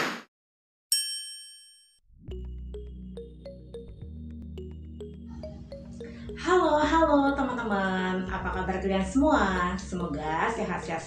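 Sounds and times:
soft music with bass and plucking: 2.2s - 11.0s.

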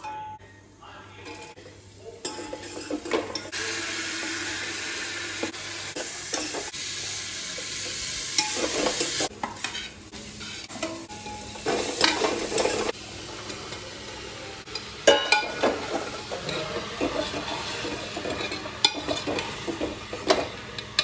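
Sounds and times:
food sizzling in a pot: 1.4s - 21.0s.

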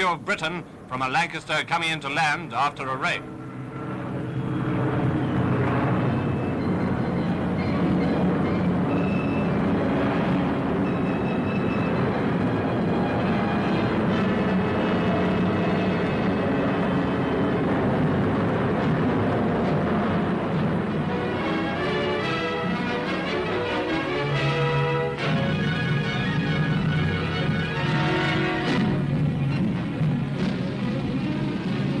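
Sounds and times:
aircraft engines droning: 0.0s - 32.0s.

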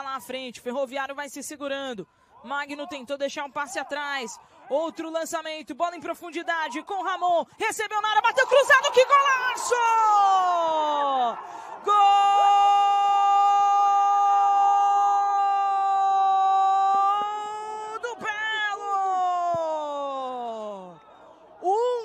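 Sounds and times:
commentator shouting: 2.4s - 20.3s.

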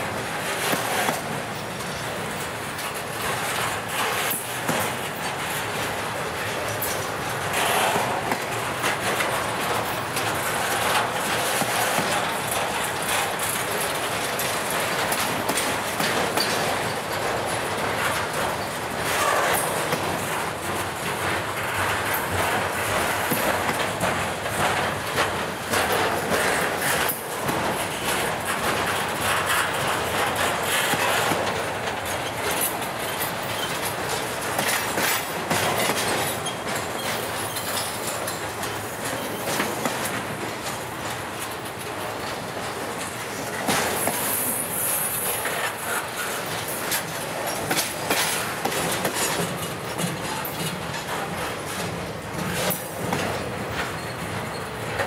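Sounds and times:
steel wheels rumbling on rail: 0.0s - 55.0s
wheels clicking over rail joints: 0.0s - 55.0s.

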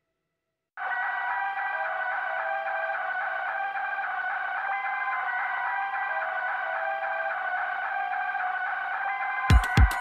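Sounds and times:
electronic dance music: 9.5s - 10.0s.

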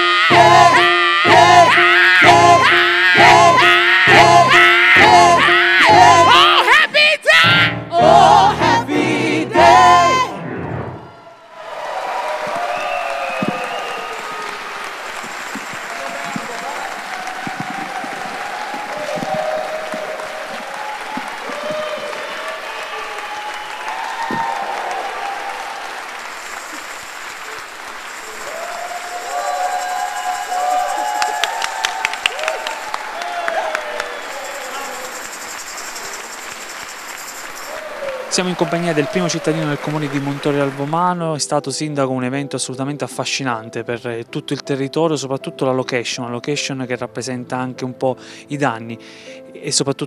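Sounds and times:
gospel singers and band: 0.0s - 6.6s, 7.9s - 10.4s
voices calling out: 0.0s - 8.8s
audience applauding: 11.3s - 41.2s.

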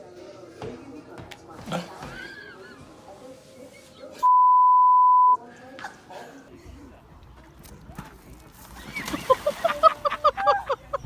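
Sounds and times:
censor bleep: 4.2s - 5.4s.

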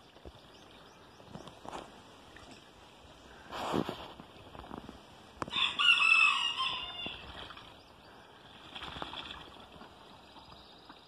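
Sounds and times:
rooster crowing: 5.5s - 7.2s.

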